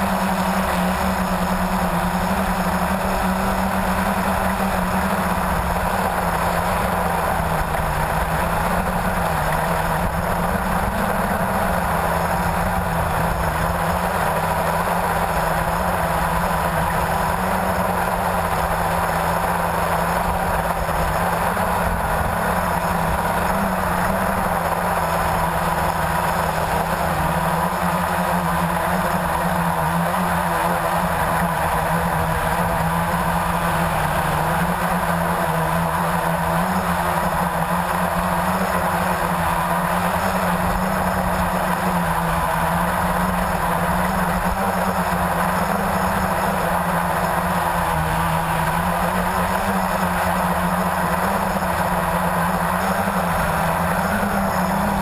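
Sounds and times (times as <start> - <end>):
quadcopter propellers buzzing: 0.0 - 55.0.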